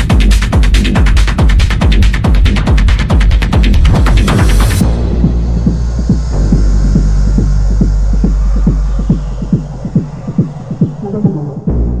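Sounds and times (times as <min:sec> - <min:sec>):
deep bass drone: 0:00.0 - 0:12.0
techno music with driving beat: 0:00.0 - 0:12.0
soft low pulse: 0:04.8 - 0:12.0.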